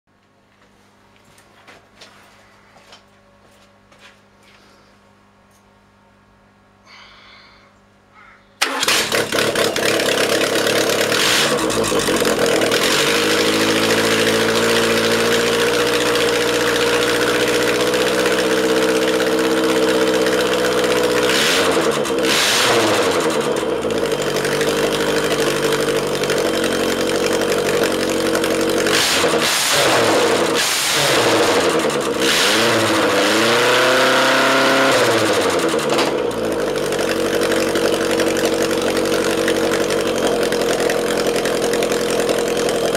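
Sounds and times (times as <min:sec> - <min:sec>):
engine revving: 0:08.6 - 0:40.4
engine starting and running: 0:08.6 - 0:42.9.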